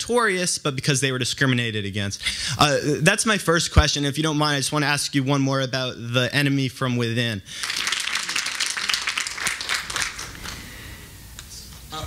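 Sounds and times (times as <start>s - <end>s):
audience applause: 7.6s - 10.6s.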